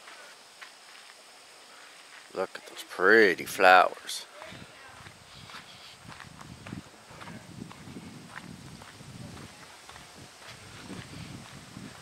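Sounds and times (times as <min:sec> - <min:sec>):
footsteps on dirt: 0:00.0 - 0:03.1, 0:03.9 - 0:12.0.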